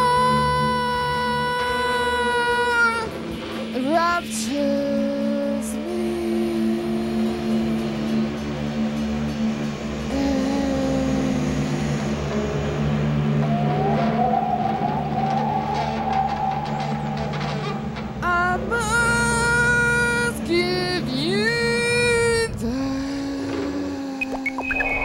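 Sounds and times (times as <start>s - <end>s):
electric guitar droning notes: 0.0s - 25.0s
rising wavering whine: 0.0s - 25.0s
steady low drone: 0.0s - 25.0s.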